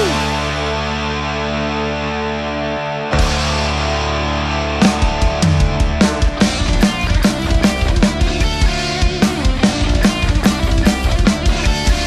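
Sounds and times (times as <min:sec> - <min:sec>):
bass guitar: 0:00.0 - 0:12.0
distorted electric guitar chord: 0:00.0 - 0:12.0.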